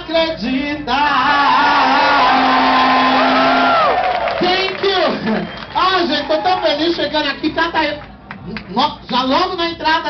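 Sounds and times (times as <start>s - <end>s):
people shouting and whooping: 1.0s - 7.1s.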